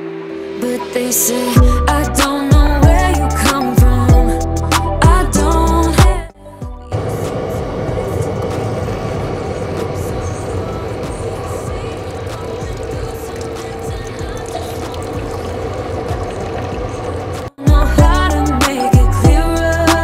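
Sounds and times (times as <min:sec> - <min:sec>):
coffee maker humming: 0:06.9 - 0:18.6
coffee streaming into a mug: 0:10.8 - 0:17.5.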